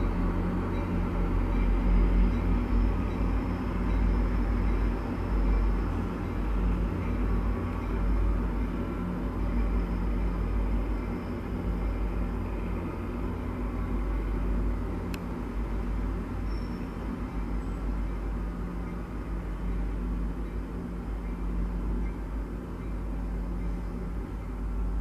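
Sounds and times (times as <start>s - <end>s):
diesel train engine drone: 0.0s - 25.0s
faint tick: 15.1s - 15.3s.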